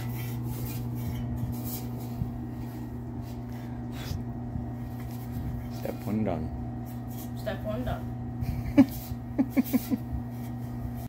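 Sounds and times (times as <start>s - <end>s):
soft rubbing of metal part: 0.0s - 4.2s
low electrical hum: 0.0s - 11.0s.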